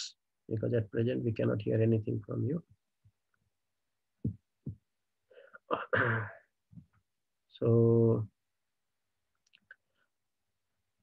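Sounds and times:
man clearing his throat: 0:05.7 - 0:06.5.

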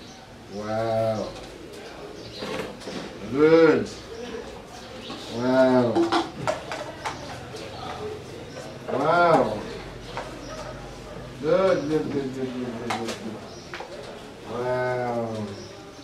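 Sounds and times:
clicks of paper and plastic cups: 0:05.9 - 0:08.0, 0:11.7 - 0:14.2.

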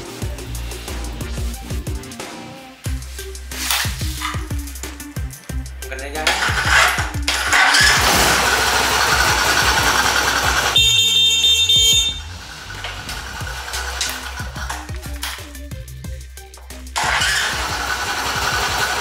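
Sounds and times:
background music: 0:00.0 - 0:19.0
motorcycle horn: 0:10.6 - 0:12.4.

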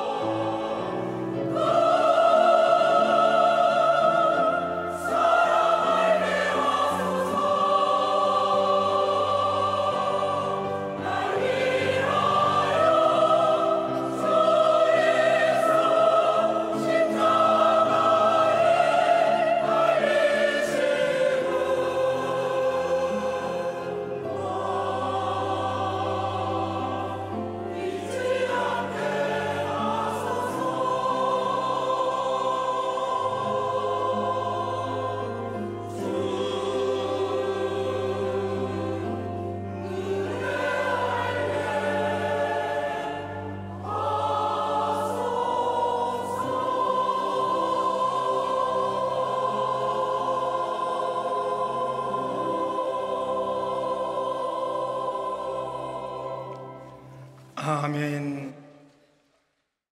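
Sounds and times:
church choir singing a hymn: 0:00.0 - 0:58.7.

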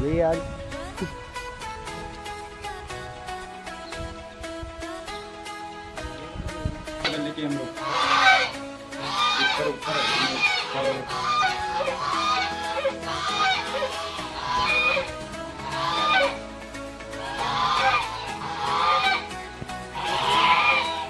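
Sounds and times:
background music: 0:00.0 - 0:21.0
geese honking: 0:07.0 - 0:21.0.

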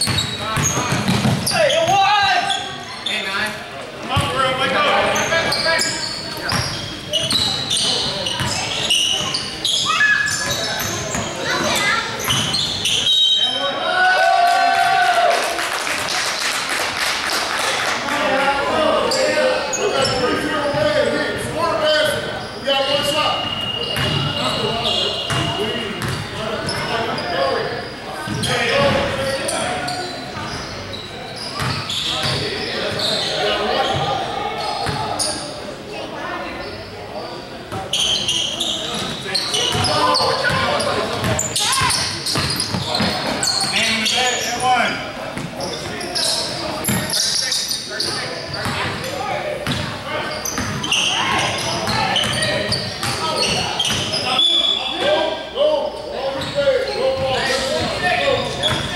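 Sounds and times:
basketball bouncing on wooden floor: 0:00.0 - 0:01.4
players' voices echoing: 0:00.0 - 0:58.9.

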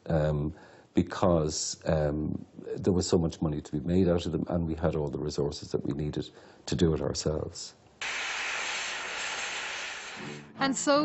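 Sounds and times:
gas cutting torch hissing: 0:08.0 - 0:10.5.

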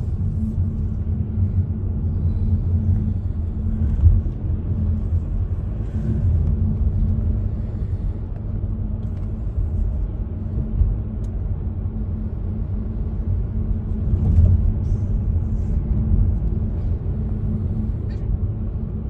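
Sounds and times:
car interior road rumble: 0:00.0 - 0:19.0.

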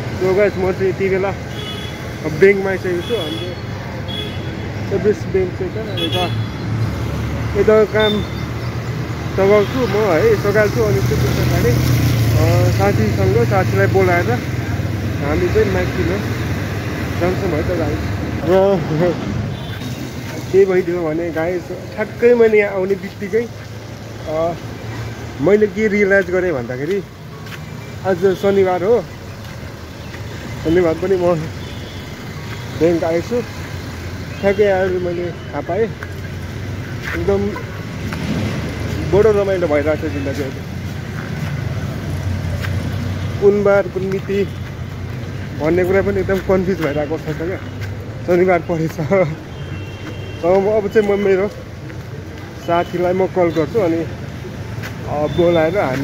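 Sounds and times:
street traffic noise: 0:00.0 - 0:56.0
man talking: 0:00.1 - 0:01.5, 0:02.2 - 0:03.7, 0:04.8 - 0:06.5, 0:07.4 - 0:08.4, 0:09.3 - 0:16.4, 0:17.1 - 0:19.4, 0:20.2 - 0:23.6, 0:24.2 - 0:24.8, 0:25.4 - 0:27.2, 0:28.0 - 0:29.2, 0:30.6 - 0:31.6, 0:32.8 - 0:33.6, 0:34.3 - 0:36.1, 0:37.0 - 0:37.7, 0:38.8 - 0:40.7, 0:43.3 - 0:44.6, 0:45.5 - 0:49.5, 0:50.4 - 0:51.7, 0:52.6 - 0:56.0.

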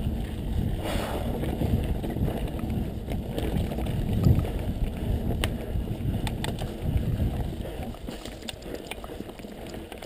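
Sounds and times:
mountain bike rumble on dirt: 0:00.0 - 0:10.0
wind buffeting microphone: 0:00.0 - 0:10.0
bike click: 0:01.4 - 0:10.0.

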